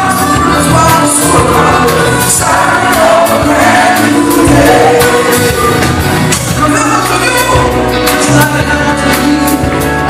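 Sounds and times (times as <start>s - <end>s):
drum beat: 0.0s - 8.8s
electric guitar: 0.0s - 10.0s
man singing: 0.0s - 10.0s.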